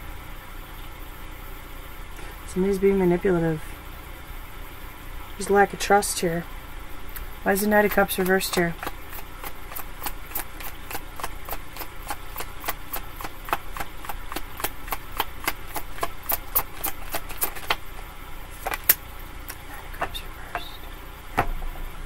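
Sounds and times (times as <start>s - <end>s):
cards being shuffled: 7.9s - 20.1s.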